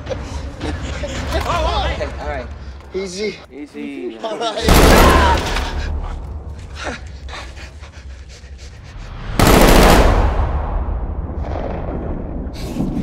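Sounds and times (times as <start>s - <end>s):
gunshots: 4.6s - 5.8s, 9.4s - 10.8s
loud gun blast: 4.7s - 5.7s, 9.4s - 12.4s.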